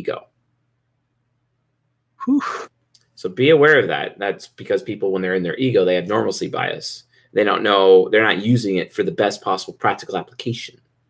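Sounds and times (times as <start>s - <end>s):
man exhaling breathy whew: 2.2s - 2.7s.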